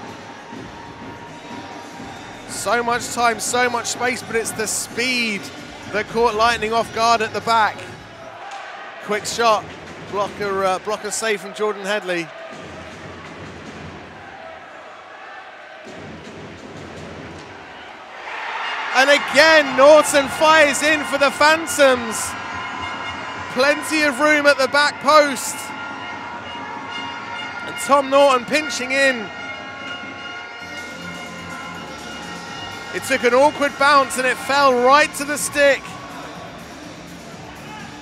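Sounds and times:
music of sustained chords: 0:29.4 - 0:33.9.

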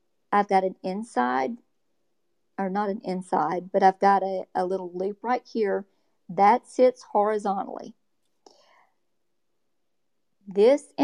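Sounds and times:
faint short breath: 0:08.4 - 0:09.0.

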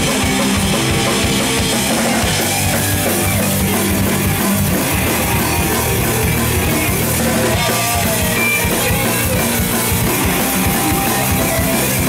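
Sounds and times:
bass guitar: 0:00.0 - 0:12.0
drum kit hits: 0:00.0 - 0:12.0
electric guitars: 0:00.0 - 0:12.0
heavy metal band playing: 0:00.0 - 0:12.0.

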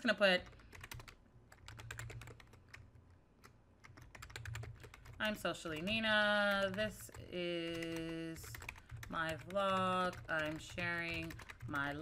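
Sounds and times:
faint keyboard typing: 0:00.4 - 0:12.0.

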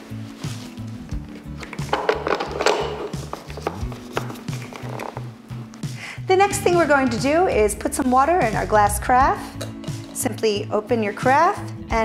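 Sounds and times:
music with steady beat: 0:00.0 - 0:10.3.

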